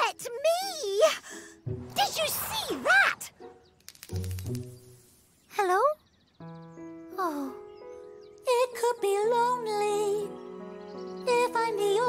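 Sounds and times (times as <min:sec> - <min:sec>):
quick run of small ticks: 0:03.7 - 0:05.2.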